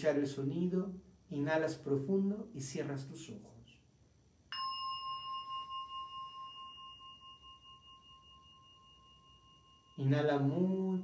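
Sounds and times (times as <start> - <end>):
meditation bell ringing: 4.5 - 11.0.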